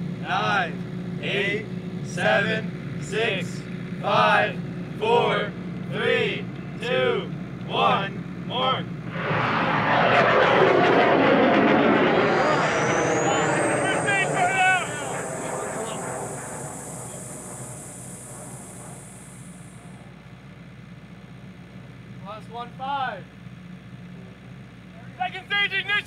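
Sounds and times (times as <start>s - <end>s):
rocket motor roar: 9.0s - 20.2s
high rising whistle: 9.1s - 20.0s.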